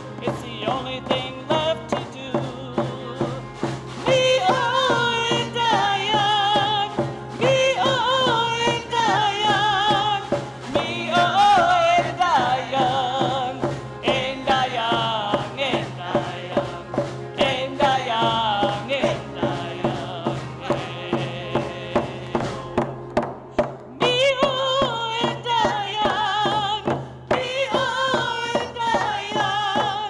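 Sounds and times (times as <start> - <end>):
hand drums beating: 0.0 - 30.0
women singing together: 0.2 - 22.9, 23.9 - 30.0.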